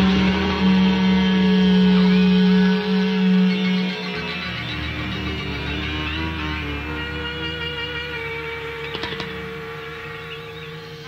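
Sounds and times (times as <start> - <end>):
droning rock chords: 0.0 - 11.0
high wavering tone: 0.0 - 11.0.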